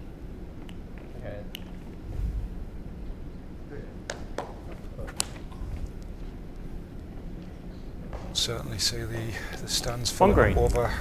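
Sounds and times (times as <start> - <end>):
low rumble of hall ambience: 0.0 - 11.0.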